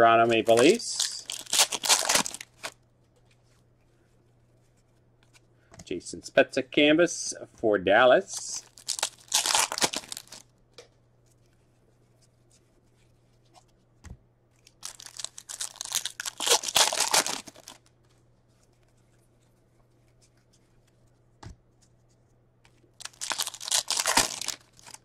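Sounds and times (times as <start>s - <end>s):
wrapper torn and crinkled: 0.5s - 2.8s, 8.6s - 10.4s, 14.8s - 17.9s, 23.0s - 25.0s.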